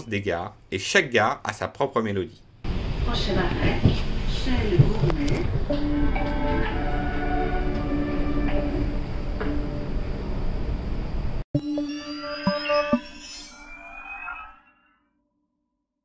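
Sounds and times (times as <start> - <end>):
chime jingle melody: 11.6 - 14.6.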